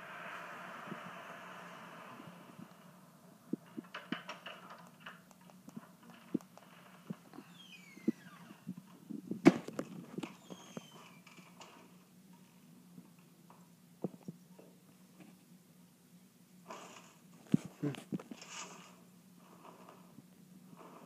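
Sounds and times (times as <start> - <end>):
low steady hum: 0.0 - 21.0
faint falling squeaks: 5.8 - 9.0, 9.8 - 11.9.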